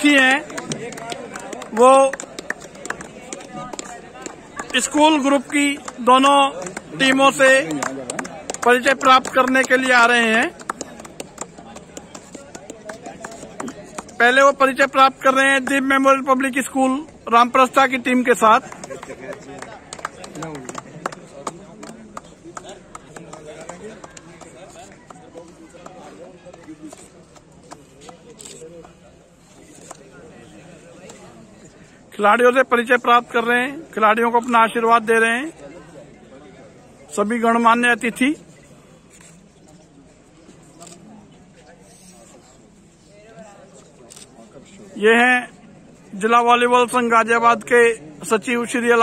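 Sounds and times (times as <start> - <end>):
man announcing: 0.0 - 2.3, 3.2 - 10.5
background chatter: 0.0 - 49.0
irregular hand claps: 0.2 - 14.2, 18.6 - 28.2.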